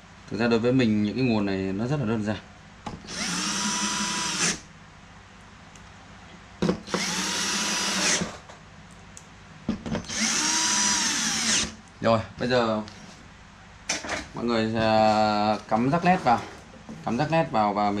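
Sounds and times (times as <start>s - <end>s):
cordless drill driving screws: 3.1s - 4.6s, 6.8s - 8.3s, 10.0s - 11.8s.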